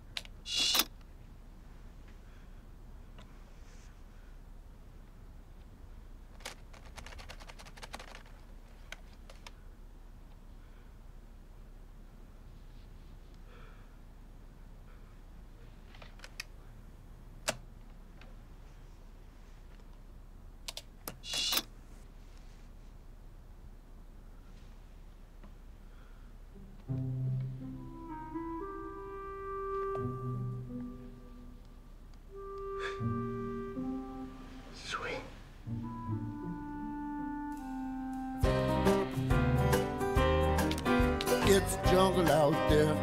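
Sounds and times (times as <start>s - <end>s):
laptop keyboard keys clicking: 6.4s - 8.4s.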